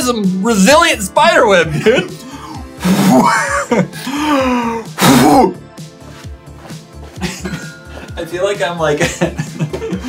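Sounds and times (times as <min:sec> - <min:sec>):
background music with steady beat: 0:00.0 - 0:10.0
man grunting: 0:04.1 - 0:05.6.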